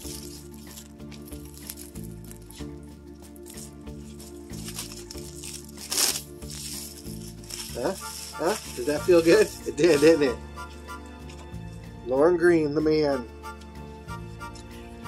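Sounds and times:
shrink wrap crinkling and tearing: 0.0 - 10.4
background music: 0.0 - 15.0.

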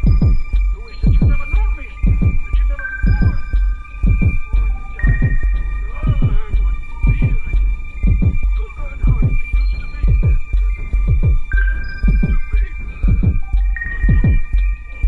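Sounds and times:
high whistling tones: 0.0 - 15.0
low throbbing pulse: 0.0 - 15.0.

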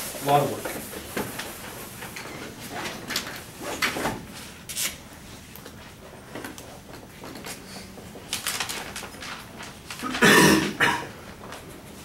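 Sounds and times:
person coughing: 10.0 - 11.2.

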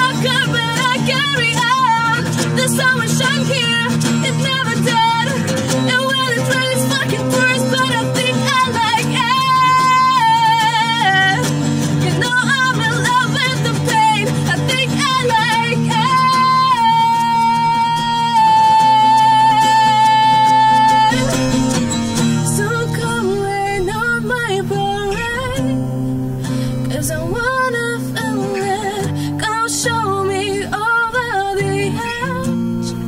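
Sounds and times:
strummed acoustic guitar: 0.0 - 33.0
woman singing with vibrato: 0.0 - 33.0.

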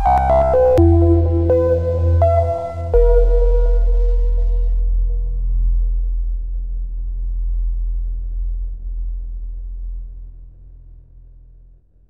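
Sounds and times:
deep synthesized bass tone: 0.0 - 11.4.

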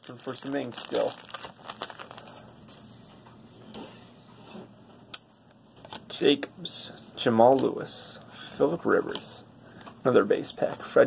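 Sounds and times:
wrapper crinkling: 0.0 - 2.8.

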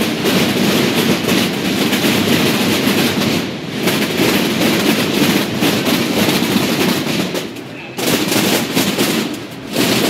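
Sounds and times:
snare drums rattling: 0.0 - 10.0.

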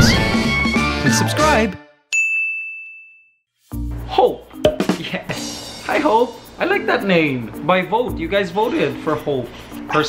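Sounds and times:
bell-like chime ding: 2.2 - 3.4.

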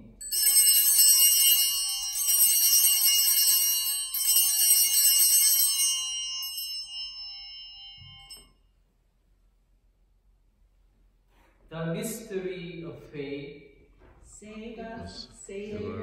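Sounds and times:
small bells ringing: 0.0 - 8.7.

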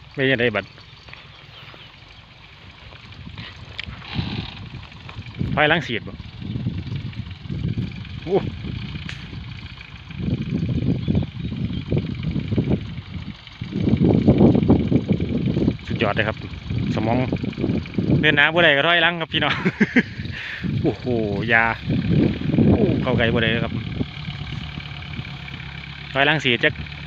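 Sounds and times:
tractor engine running: 0.0 - 27.0
man talking: 5.5 - 6.2, 20.8 - 21.8, 23.0 - 23.8, 26.1 - 26.8.

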